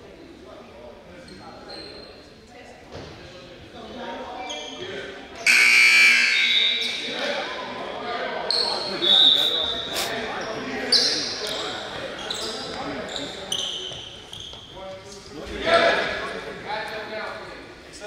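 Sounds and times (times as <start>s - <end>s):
voices echoing in gym: 0.0s - 18.0s
scoreboard buzzer: 5.4s - 6.7s
high whistle blast: 5.5s - 6.8s.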